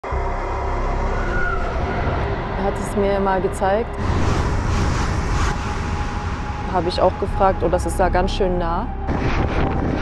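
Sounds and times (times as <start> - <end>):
train rumbling past: 0.0 - 10.0.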